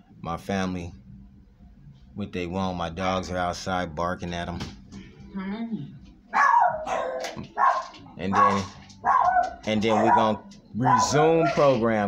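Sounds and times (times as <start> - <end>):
dogs barking: 6.3 - 12.0.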